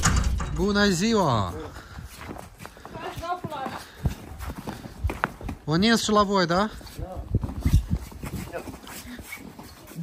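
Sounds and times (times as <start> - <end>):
footsteps on packed snow: 1.2 - 10.0.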